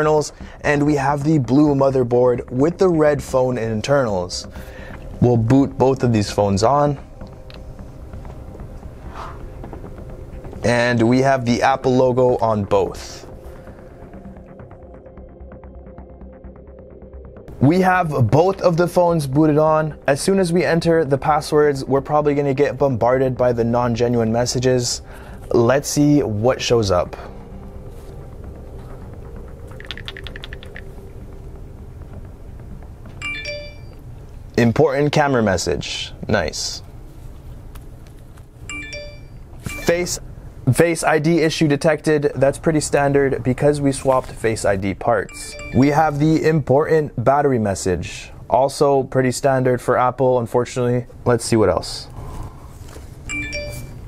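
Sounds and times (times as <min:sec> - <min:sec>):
phone keypad clicks: 0:29.7 - 0:30.9
electronic alert chime: 0:33.2 - 0:34.0, 0:38.7 - 0:40.2, 0:45.3 - 0:46.1, 0:53.3 - 0:54.0.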